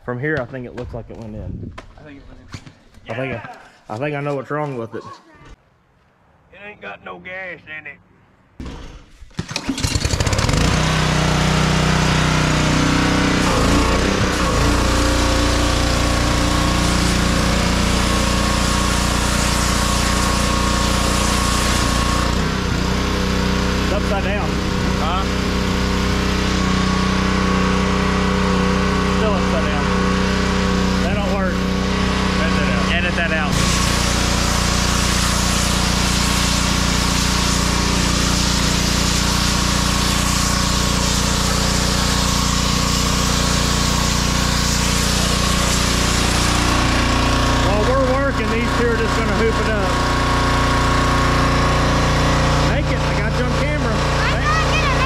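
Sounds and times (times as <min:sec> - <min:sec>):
pressure washer engine running: 0:09.5 - 0:55.0
water spray hissing: 0:10.4 - 0:55.0.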